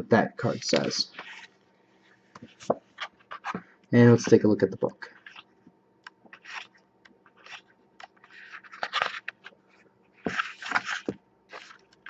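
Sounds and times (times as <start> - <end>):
book pages turning: 0.4 - 1.6, 2.4 - 3.6, 5.1 - 5.5, 6.2 - 12.0.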